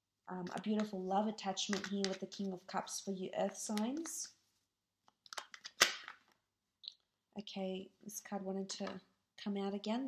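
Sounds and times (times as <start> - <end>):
cards shuffling: 5.2 - 6.3.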